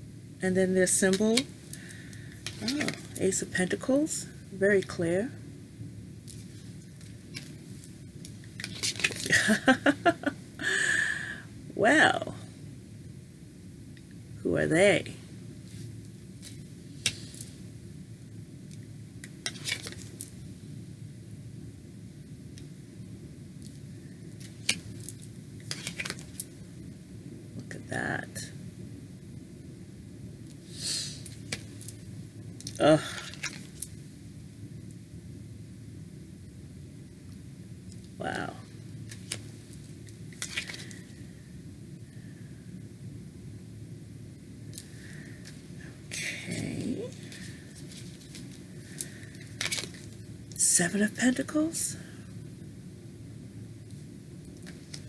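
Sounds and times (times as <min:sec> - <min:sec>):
low room hum: 0:00.0 - 0:55.0
cards clicking: 0:25.7 - 0:26.4.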